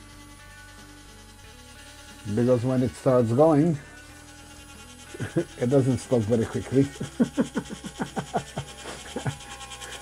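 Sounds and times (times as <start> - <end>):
man laughing: 5.1 - 5.7, 6.8 - 10.0.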